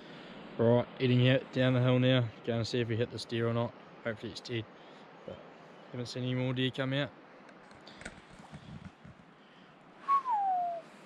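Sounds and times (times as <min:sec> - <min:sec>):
faint outdoor background noise: 0:00.0 - 0:11.0
whistle gliding down in pitch: 0:10.0 - 0:11.0.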